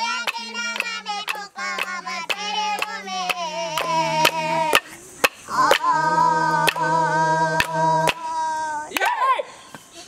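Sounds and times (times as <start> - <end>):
person singing: 0.0 - 4.9, 5.5 - 8.9
low steady drone: 0.3 - 8.8.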